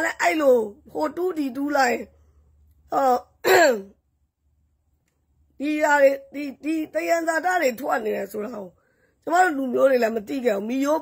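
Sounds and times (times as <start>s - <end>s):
woman speaking: 0.0s - 2.1s, 2.9s - 4.0s, 5.6s - 11.0s.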